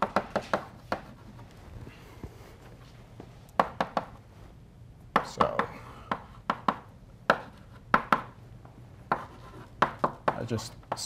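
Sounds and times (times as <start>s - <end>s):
chalk tapping and scratching: 0.0s - 1.4s, 9.1s - 11.0s.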